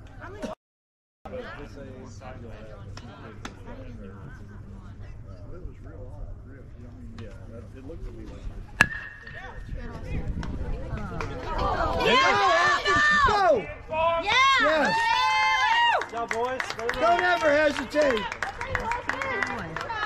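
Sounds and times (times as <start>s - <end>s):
metal bat hitting ball: 8.8s - 9.7s
spectators yelling and cheering: 11.4s - 16.1s.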